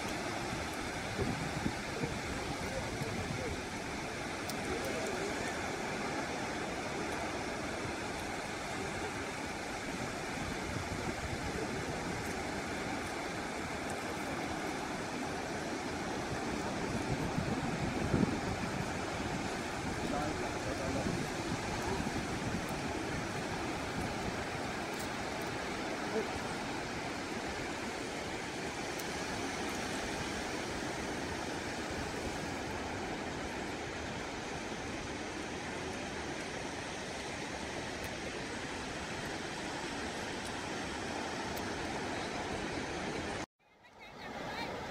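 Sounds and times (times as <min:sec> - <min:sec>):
surf breaking on beach: 0:00.0 - 0:43.5.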